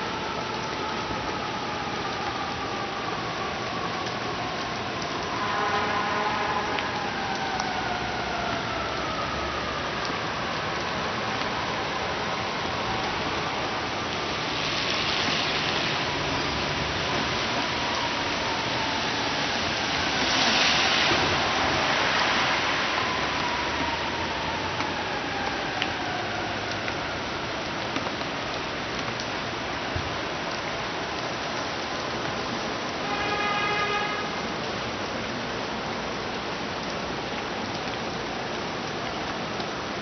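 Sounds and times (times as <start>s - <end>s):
rain on wet street: 0.0s - 40.0s
car tyres hissing on wet road: 14.2s - 24.7s.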